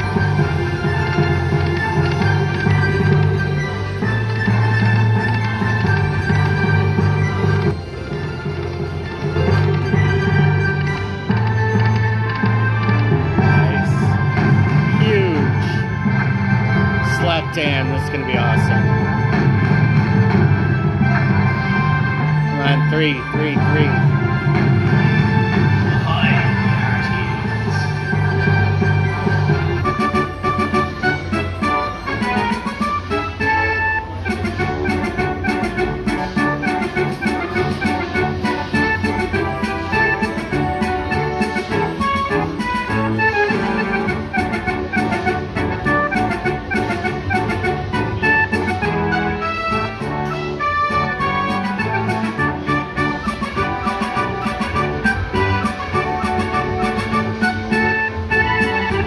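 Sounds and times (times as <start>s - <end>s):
slot machine bonus music: 0.0s - 59.0s.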